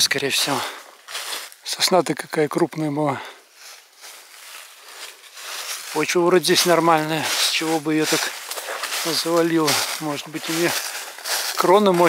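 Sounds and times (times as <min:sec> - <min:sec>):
dry leaves rustling: 0:00.0 - 0:01.8, 0:03.4 - 0:12.0.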